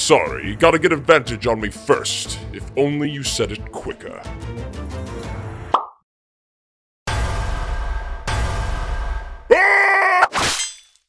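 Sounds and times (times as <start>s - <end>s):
background music: 0.0s - 5.8s.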